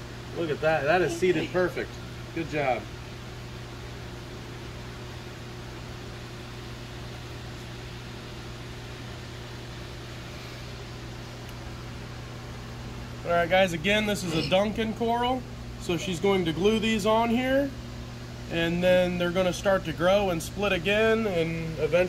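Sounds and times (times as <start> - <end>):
constant low hum: 0.0 - 22.0
fan whir: 0.0 - 22.0.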